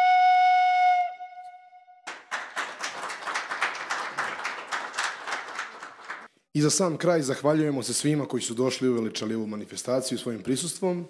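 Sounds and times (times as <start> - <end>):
wooden flute long note: 0.0 - 2.0
audience applause: 2.1 - 6.3.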